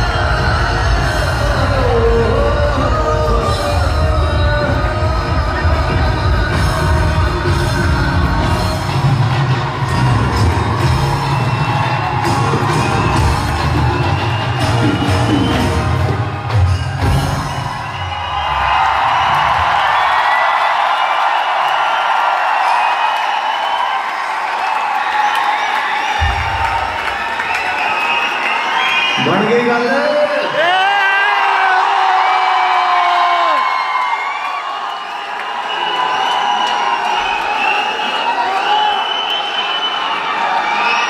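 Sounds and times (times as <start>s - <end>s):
whistles from crowd: 0.0s - 1.1s, 9.8s - 30.5s, 33.5s - 41.0s
live band music with drums: 0.0s - 17.8s
audience cheering and clapping: 0.0s - 41.0s.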